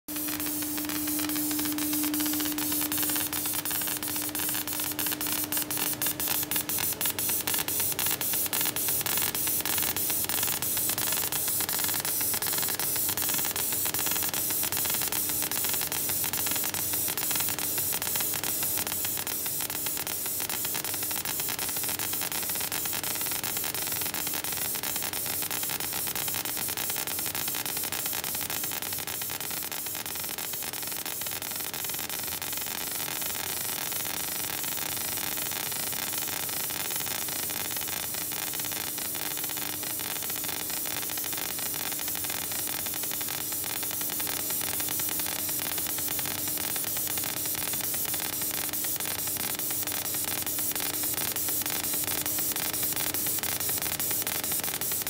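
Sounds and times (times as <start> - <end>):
laser engraver hissing and crackling: 0.1 - 55.0.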